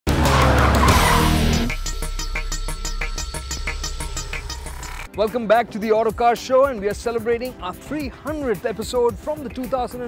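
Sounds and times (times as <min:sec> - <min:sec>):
intro music: 0:00.1 - 0:08.5
electronic music with regular beat: 0:00.1 - 0:10.0
tyre screech sound effect: 0:00.2 - 0:05.1.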